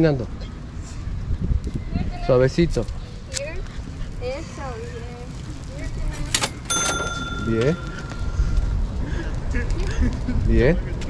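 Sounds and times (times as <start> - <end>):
low outdoor rumble: 0.0 - 11.0
metallic bell-like ring: 6.7 - 8.7.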